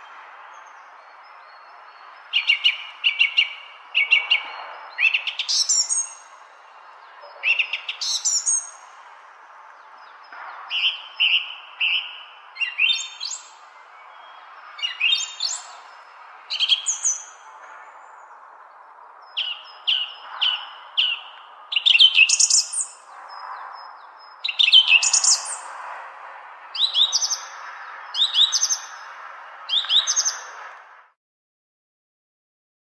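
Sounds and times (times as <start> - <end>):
songbird chirps and trills: 0.0 - 25.9, 26.7 - 30.6
faint background noise: 0.0 - 31.2.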